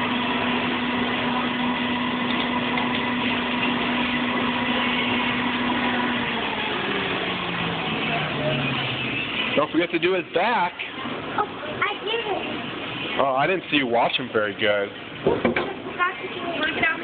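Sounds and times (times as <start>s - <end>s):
motor hum: 0.0s - 10.3s.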